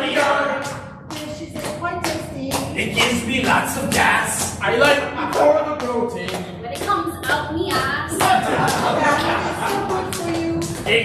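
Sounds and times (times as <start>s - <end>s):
people singing: 0.0s - 6.6s, 7.8s - 11.0s
rhythmic hand clapping: 0.0s - 11.0s.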